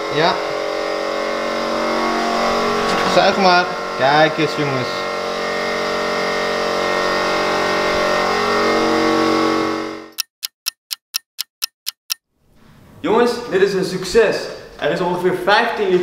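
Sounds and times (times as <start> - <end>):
vacuum coolant-fill tool hissing: 0.1 - 9.6
clock ticking: 10.2 - 12.2.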